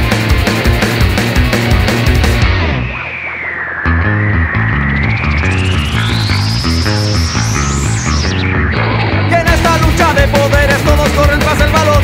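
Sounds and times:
bass guitar: 0.0 - 3.2, 3.8 - 12.0
electric guitar: 0.0 - 12.0
punk rock band playing: 0.0 - 12.0
sweeping sound effect: 1.8 - 10.2.

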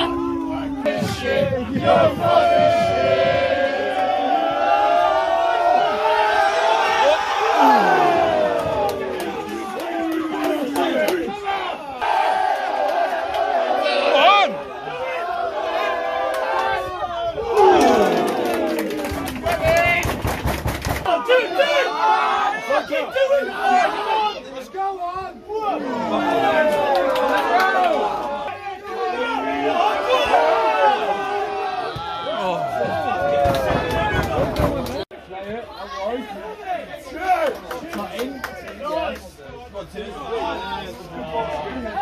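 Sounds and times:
crowd chanting and shouting: 0.0 - 35.1
sharp claps: 17.8 - 21.1.

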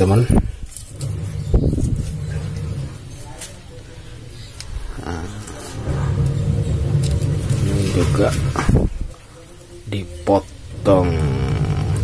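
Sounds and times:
low engine hum: 5.7 - 8.9.

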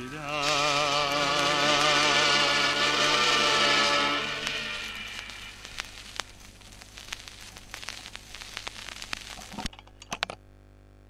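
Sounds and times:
low steady hum: 0.0 - 11.0
vinyl crackles and pops: 0.0 - 11.0
record clicks: 4.4 - 10.4.

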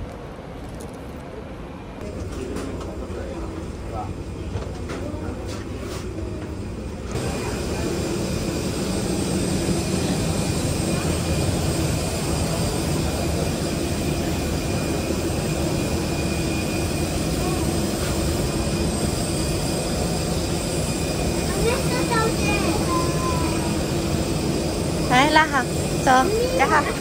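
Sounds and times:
child's voice: 21.5 - 23.8, 26.1 - 27.0.

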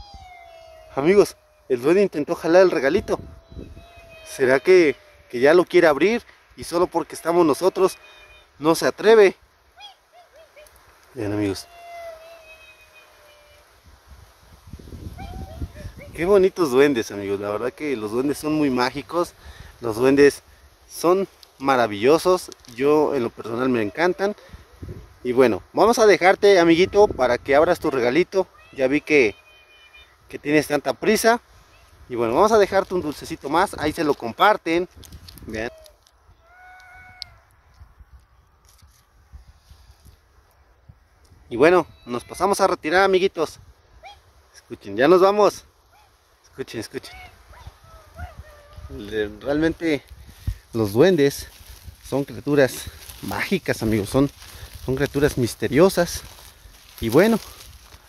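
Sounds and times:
high-pitched squeaky call: 0.0 - 1.9, 2.5 - 5.5, 11.6 - 13.7.

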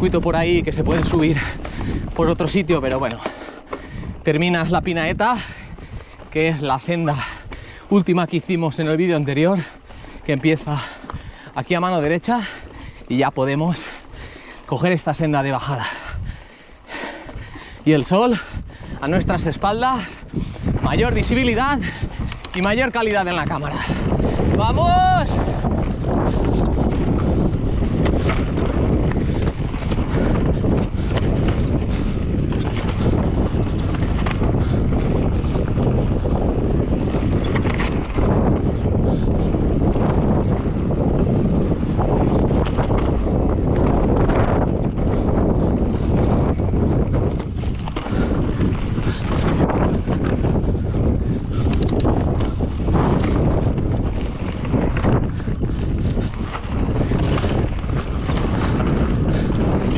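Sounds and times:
wind buffeting microphone: 0.0 - 59.9
bike rattling and knocking over stones: 0.6 - 5.0, 20.3 - 59.9.

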